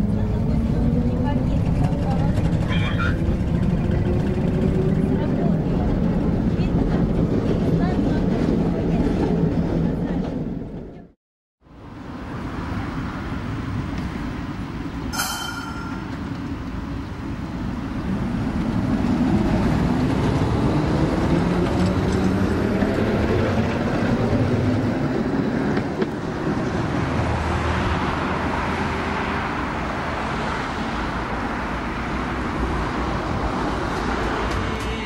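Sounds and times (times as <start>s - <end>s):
tram traction motors whining: 0.0s - 6.9s
road traffic: 0.0s - 10.7s, 11.6s - 35.0s
tram rumbling on track: 0.0s - 35.0s.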